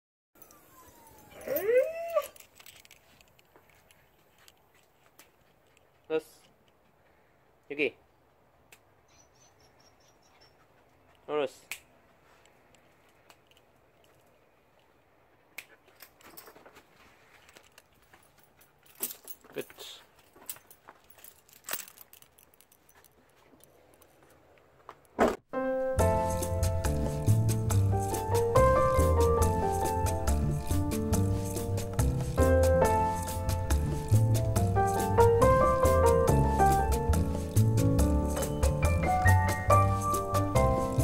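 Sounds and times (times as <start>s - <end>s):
dog howling: 0.4s - 2.4s
dog whining: 0.4s - 2.4s
dog harness metal clinking: 0.4s - 4.7s, 15.8s - 16.8s, 17.4s - 24.2s.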